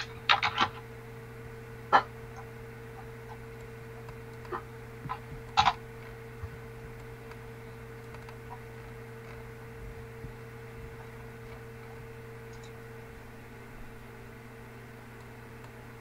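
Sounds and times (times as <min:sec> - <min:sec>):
steady electrical hum: 0:00.0 - 0:16.0.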